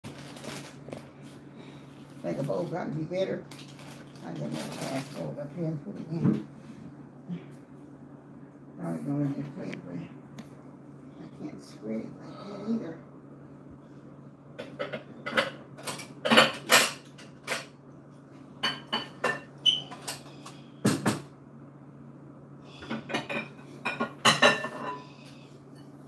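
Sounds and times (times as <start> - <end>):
dishes and bowls clattering: 14.6 - 17.7, 18.6 - 20.2, 22.8 - 25.1.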